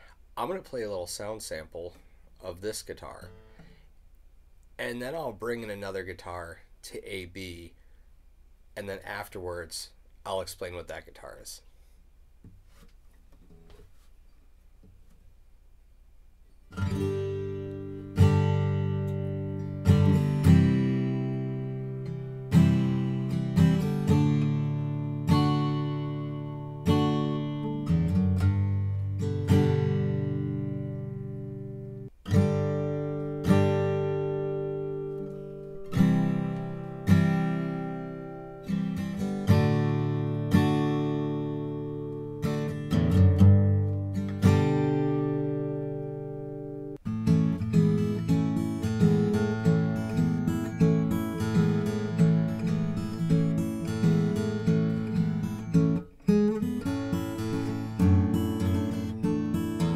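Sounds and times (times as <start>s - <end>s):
acoustic guitar strumming chords: 16.7s - 59.9s.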